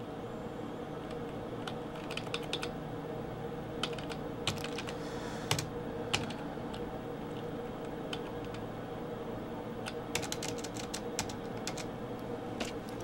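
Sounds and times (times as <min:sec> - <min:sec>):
faint hum: 0:00.0 - 0:13.0
computer keyboard keys clicking: 0:01.1 - 0:02.8, 0:03.8 - 0:08.6, 0:09.8 - 0:11.9.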